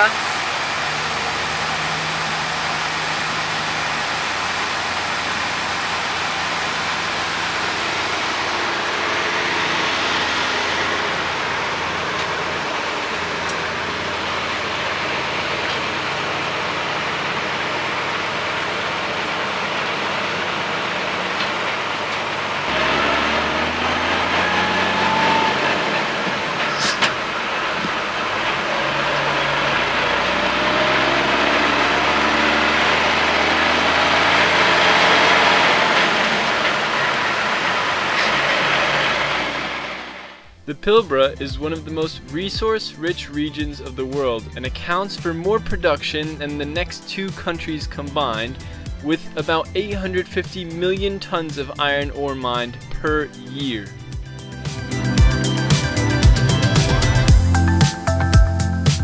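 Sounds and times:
diesel truck engine: 0.0s - 59.0s.

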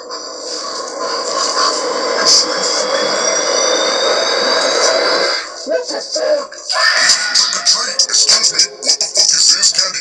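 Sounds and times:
harsh static noise: 0.0s - 10.0s
thin high whining tones: 0.2s - 5.7s.

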